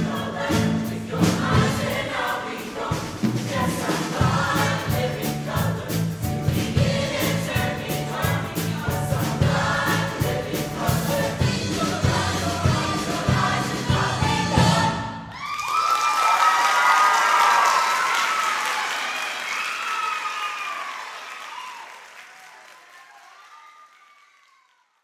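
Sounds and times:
choir singing up-tempo song: 0:00.0 - 0:15.3
audience applause: 0:15.3 - 0:25.0
audience cheering with whoops: 0:15.3 - 0:25.0.

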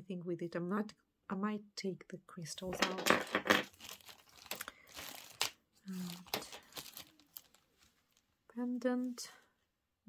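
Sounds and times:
crinkly packaging rustling: 0:02.8 - 0:09.2.

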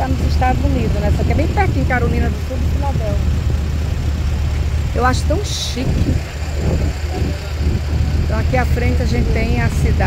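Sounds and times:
ferry engine drone: 0:00.0 - 0:10.0.

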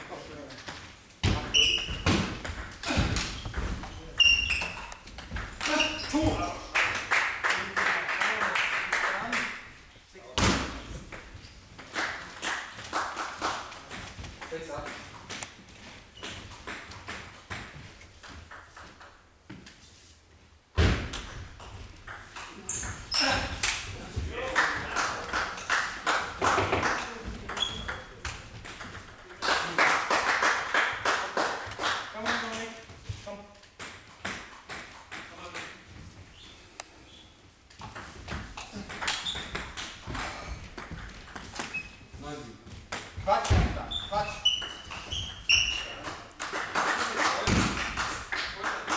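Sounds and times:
table tennis ball pinging: 0:00.7 - 0:07.1, 0:26.5 - 0:29.4, 0:37.8 - 0:41.9.

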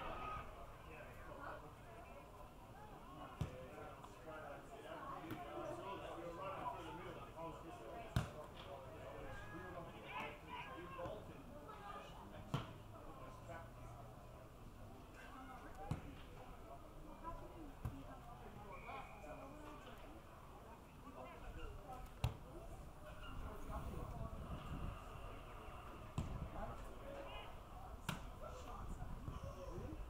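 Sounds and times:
faint distant voices: 0:00.0 - 0:30.0.

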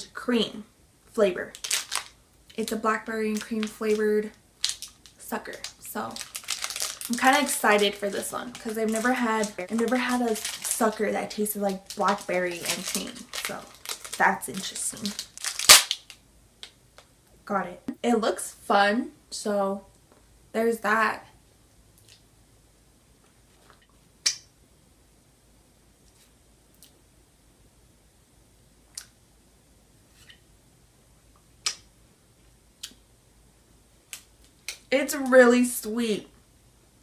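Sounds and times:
wet mouth clicks and lip smacks: 0:22.0 - 0:22.2, 0:24.2 - 0:24.5, 0:26.1 - 0:27.0, 0:28.9 - 0:29.2, 0:31.6 - 0:31.9
lip smack: 0:24.2 - 0:24.5, 0:31.6 - 0:31.9.

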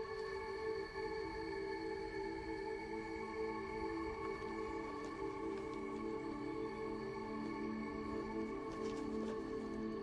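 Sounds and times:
soft ambient film score: 0:00.0 - 0:10.0.

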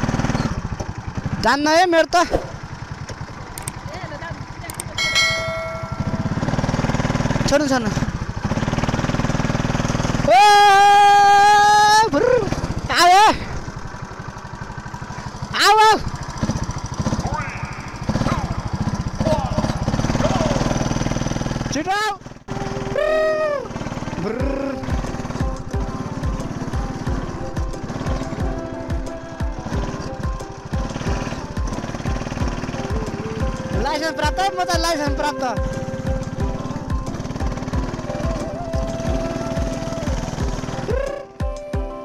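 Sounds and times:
go-kart engine running: 0:00.0 - 0:41.7
engine sweeps rising and falling: 0:05.0 - 0:34.7.

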